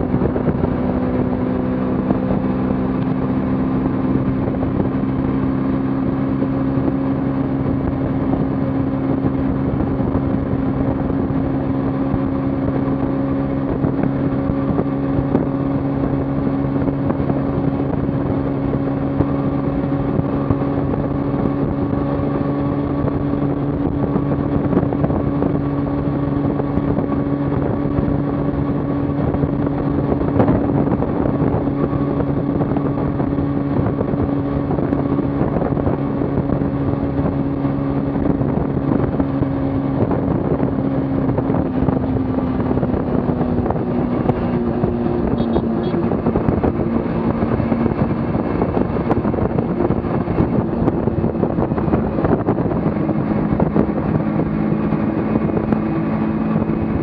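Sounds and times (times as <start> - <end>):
motorcycle engine cruising: 0.0 - 57.0
road noise: 0.0 - 57.0
wind rush: 0.0 - 57.0.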